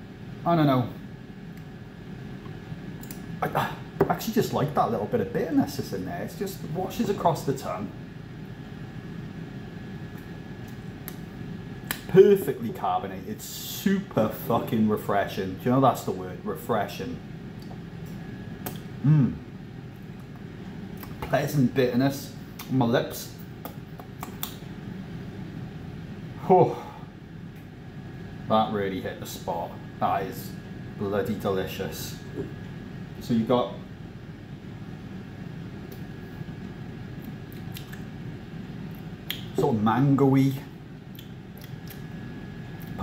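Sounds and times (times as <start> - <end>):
low room noise: 0.0 - 43.0
mouth and swallow clicks: 37.2 - 38.1, 41.1 - 42.0.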